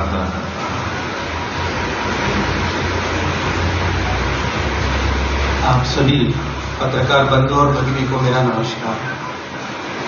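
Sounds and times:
rushing noise with low hum: 0:00.0 - 0:10.0.

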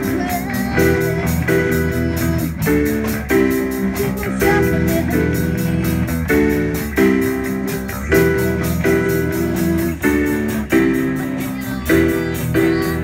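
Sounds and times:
bass guitar: 0:00.0 - 0:13.0
drum kit: 0:00.0 - 0:13.0
electric guitar: 0:00.0 - 0:13.0
keyboard: 0:00.0 - 0:13.0.

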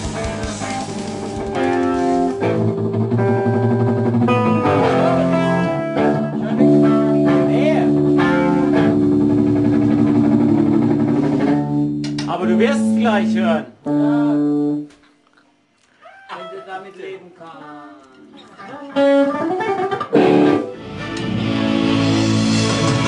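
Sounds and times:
guitar melody over low drone: 0:00.0 - 0:14.9, 0:19.0 - 0:23.0.

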